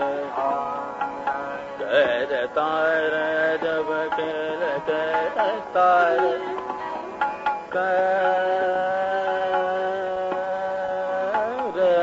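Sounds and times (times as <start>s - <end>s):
man singing classical vocals: 0.0s - 6.8s, 7.6s - 12.0s.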